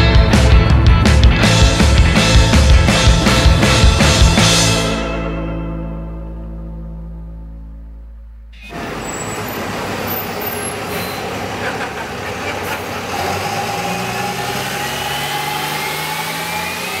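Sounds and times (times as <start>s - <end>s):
vehicle engine running: 0.0s - 5.0s, 8.6s - 17.0s
street noise: 0.0s - 5.4s, 8.5s - 17.0s.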